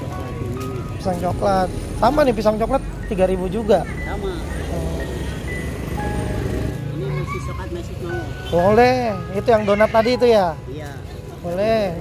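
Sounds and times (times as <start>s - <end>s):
people talking quietly: 0.0s - 5.6s
road traffic rumble: 0.0s - 12.0s.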